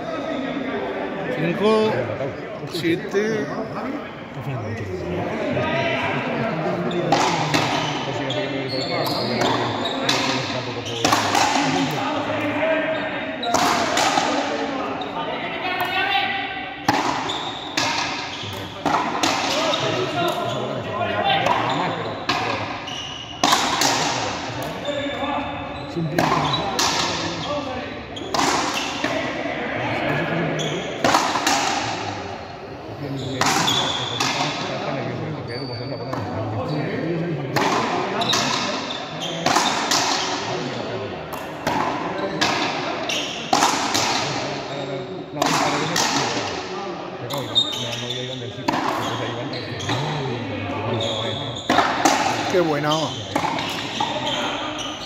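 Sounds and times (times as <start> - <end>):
ball struck with rackets: 9.4 - 12.0, 23.4 - 24.2, 53.3 - 54.1.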